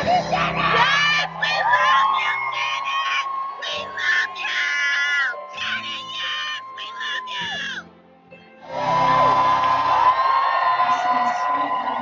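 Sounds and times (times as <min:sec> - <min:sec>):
fans screaming: 0:00.0 - 0:07.8, 0:08.7 - 0:12.0
live concert music: 0:00.0 - 0:12.0.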